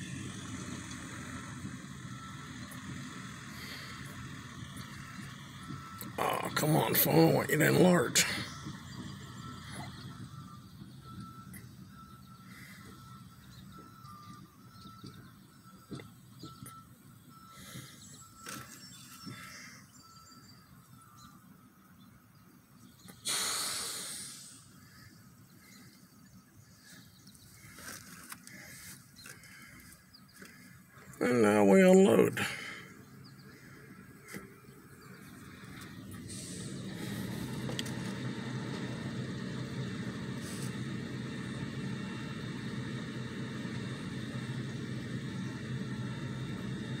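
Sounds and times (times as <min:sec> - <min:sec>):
faint high chirp: 0:07.7 - 0:23.2
loud hiss: 0:23.2 - 0:24.8.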